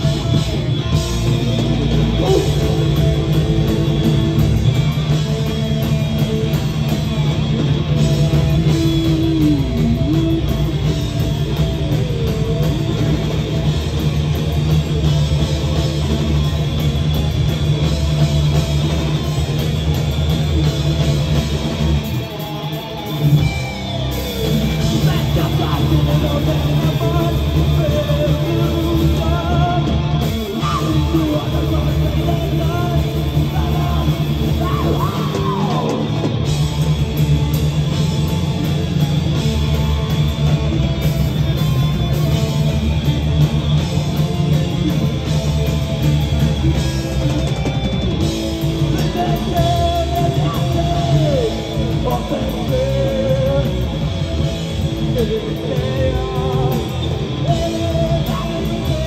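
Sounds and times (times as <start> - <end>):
live heavy metal band: 0.0 - 59.0.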